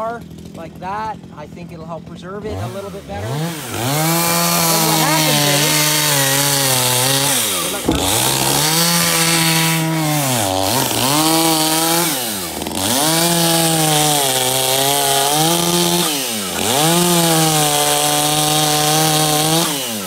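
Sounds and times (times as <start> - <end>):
chainsaw engine revving: 0.0 - 20.0.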